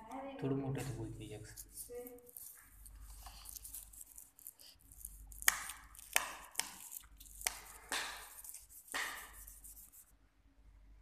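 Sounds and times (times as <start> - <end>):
stiff paper card snapping: 5.4 - 9.3.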